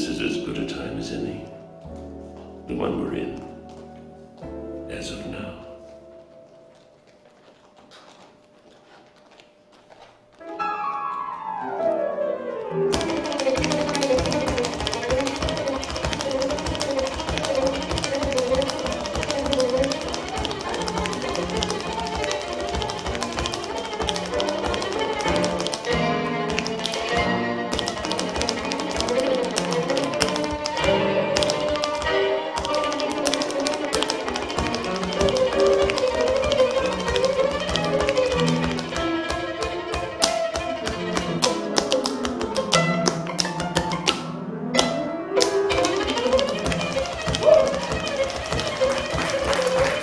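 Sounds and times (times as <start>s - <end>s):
instrumental music: 0.0s - 8.8s, 10.3s - 50.0s
tap shoes on stage floor: 3.3s - 4.6s, 5.8s - 11.2s, 12.9s - 50.0s.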